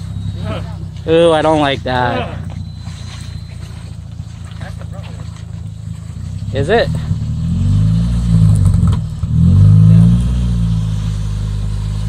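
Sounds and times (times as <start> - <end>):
faint voices: 0.0 - 7.2
low engine rumble: 0.0 - 12.0.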